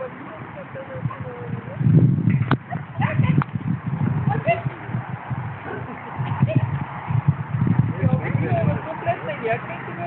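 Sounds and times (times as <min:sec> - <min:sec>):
low irregular thumps and rumble: 0:01.8 - 0:08.9.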